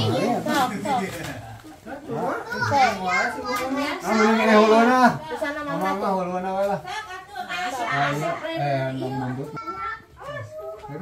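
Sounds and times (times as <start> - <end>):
children chattering and calling: 0.0 - 11.0.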